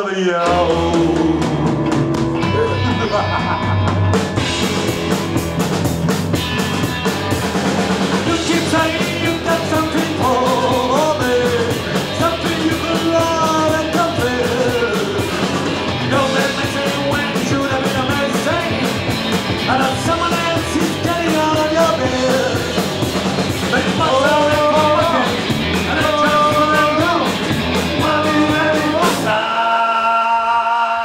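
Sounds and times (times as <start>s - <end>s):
man singing: 0.0s - 3.3s, 8.2s - 19.0s, 19.6s - 22.8s, 23.6s - 31.0s
drums: 0.0s - 31.0s
bass guitar: 0.4s - 29.8s
electric guitar: 0.4s - 29.8s.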